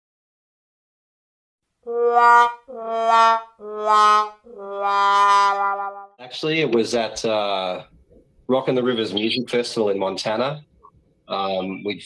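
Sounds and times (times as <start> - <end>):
descending brass fail notes: 1.9 - 6.2.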